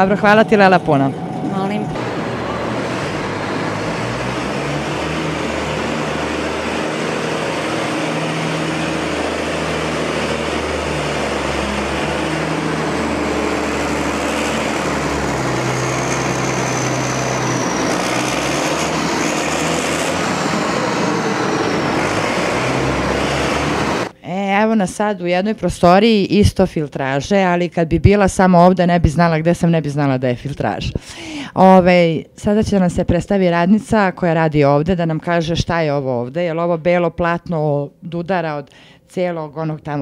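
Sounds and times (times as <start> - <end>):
faint high whine: 0.0 - 3.9
industrial machinery drone: 0.0 - 24.2.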